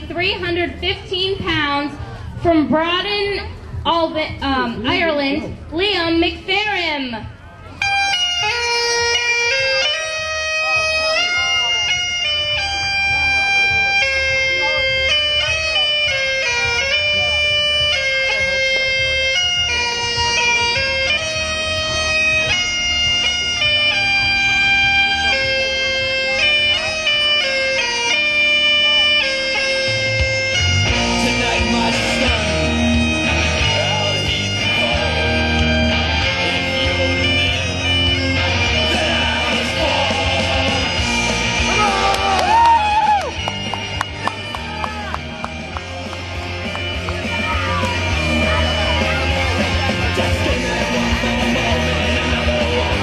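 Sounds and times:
rock band with drums and guitar: 0.0s - 53.0s
bagpipe drone: 7.7s - 53.0s
bagpipe melody over loudspeaker: 7.7s - 53.0s.

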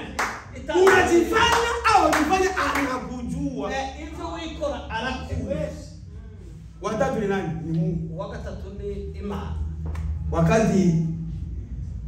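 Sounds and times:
hand claps: 0.0s - 3.0s, 9.8s - 10.2s
man's voice: 0.0s - 6.0s.

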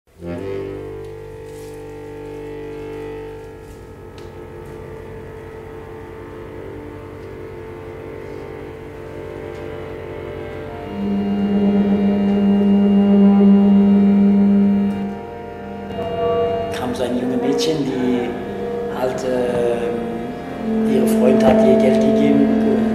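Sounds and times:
accordion sustained chords: 0.1s - 22.9s.

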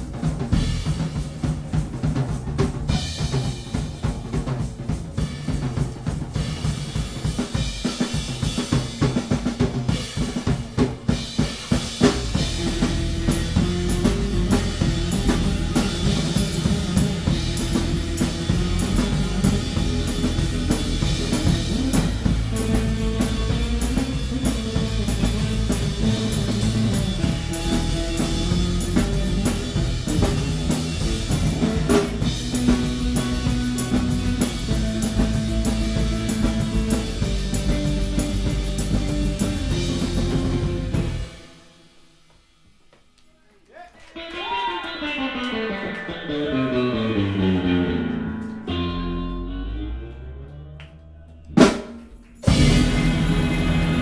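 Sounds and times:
bass guitar: 0.0s - 41.6s, 44.2s - 54.0s
electric guitar: 0.0s - 41.9s, 44.2s - 54.0s
drum kit playing: 0.0s - 43.2s, 51.6s - 54.0s.

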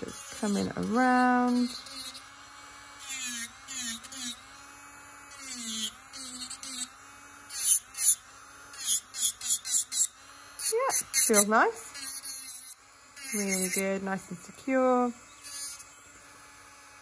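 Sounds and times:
drill bit grinding nail polish: 0.0s - 17.0s
electric nail drill whining: 0.0s - 17.0s.

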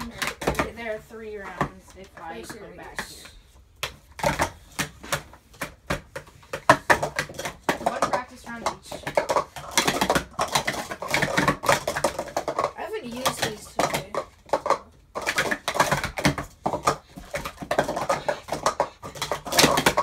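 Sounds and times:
plastic cups clattering: 0.0s - 20.0s.

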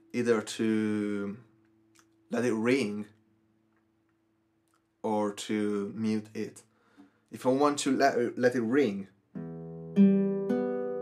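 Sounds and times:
classical guitar strings plucked: 9.3s - 11.0s.

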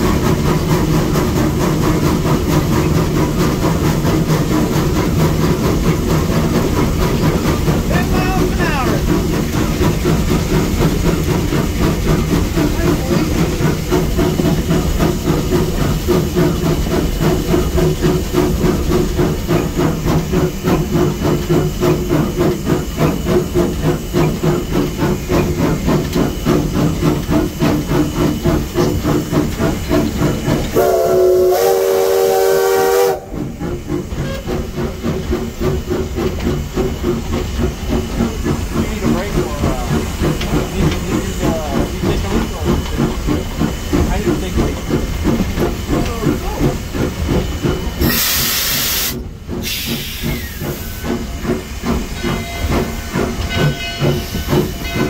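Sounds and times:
steam hissing: 0.0s - 55.0s
steam locomotive exhaust beat: 0.0s - 55.0s
steam whistle blast: 30.8s - 33.5s.

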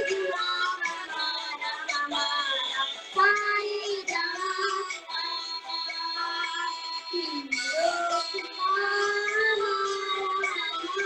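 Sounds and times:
girl singing: 0.0s - 11.0s.

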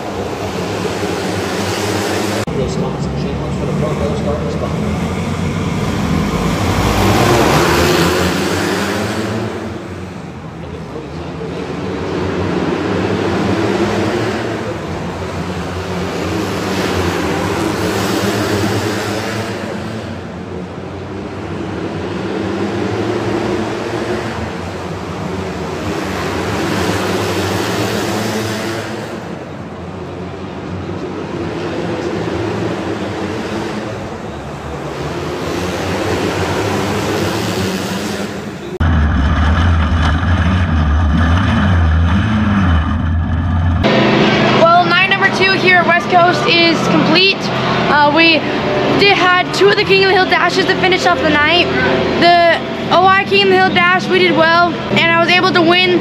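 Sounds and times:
dirt kart engines racing: 0.0s - 56.0s.

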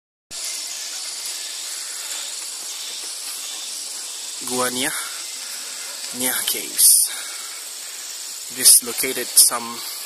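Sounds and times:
fast pulsing insect trill: 0.3s - 10.0s
rainforest insects droning: 0.3s - 10.0s.

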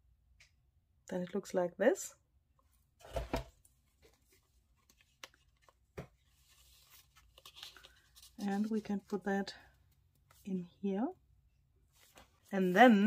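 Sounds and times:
paper and card rustling: 3.0s - 10.5s, 11.9s - 13.0s.

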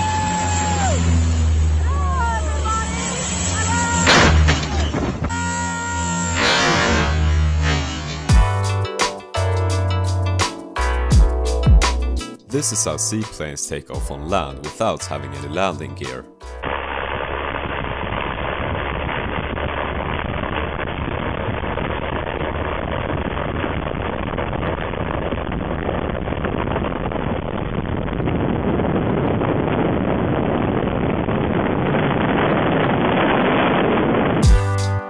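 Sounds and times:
wind on microphone: 25.1s - 34.4s.

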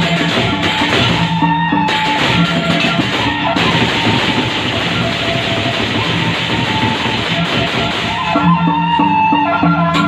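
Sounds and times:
gamelan pitched notes: 0.0s - 10.0s.

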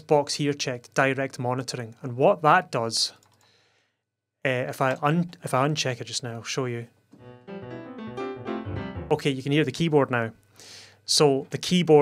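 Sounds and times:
keyboard playing piano notes: 7.2s - 9.6s.

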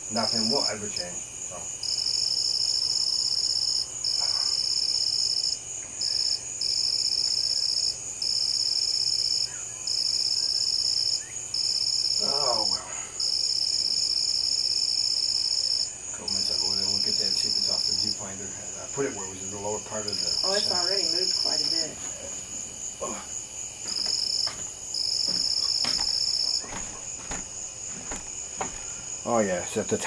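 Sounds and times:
high pulsing insect chorus: 0.0s - 30.0s
insects trilling: 0.0s - 30.0s.

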